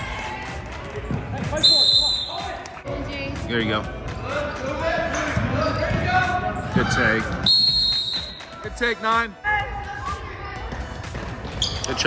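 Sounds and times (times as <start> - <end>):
voices of players and spectators: 0.0 - 12.0.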